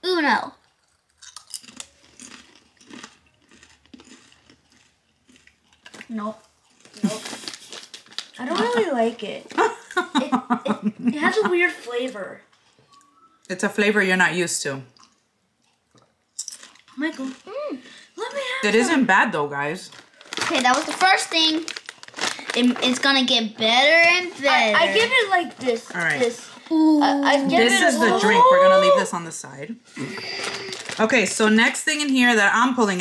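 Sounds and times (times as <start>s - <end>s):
crunching tortilla chips: 0.6s - 8.8s, 19.9s - 23.3s, 30.0s - 31.1s.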